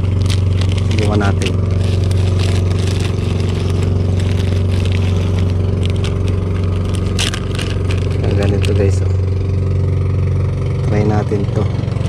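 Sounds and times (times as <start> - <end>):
plastic packet crinkling: 0.0 - 9.1
engine running steadily: 0.0 - 12.0.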